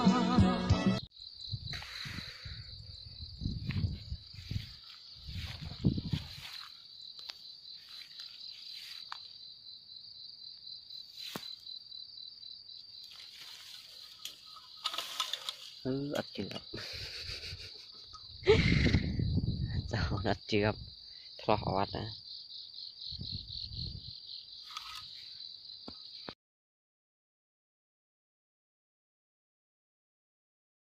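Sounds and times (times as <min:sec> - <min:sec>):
music: 0:00.0 - 0:01.1
insect trilling: 0:01.0 - 0:26.3.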